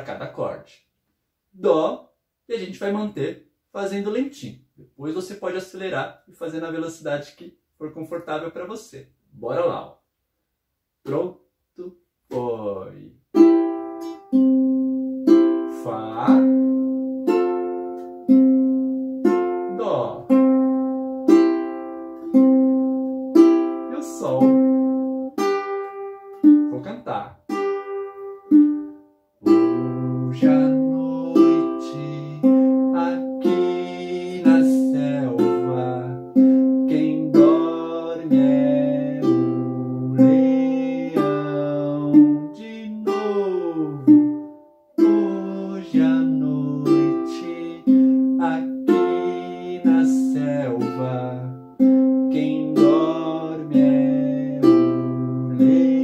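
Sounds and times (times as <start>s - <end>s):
fingerpicked ukulele: 13.3s - 26.8s, 27.5s - 56.0s
man singing: 29.5s - 44.2s, 45.0s - 51.6s, 52.3s - 56.0s.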